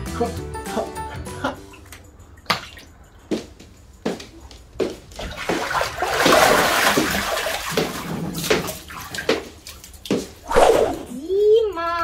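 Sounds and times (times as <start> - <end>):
water splashing in paddling pool: 5.2 - 11.2.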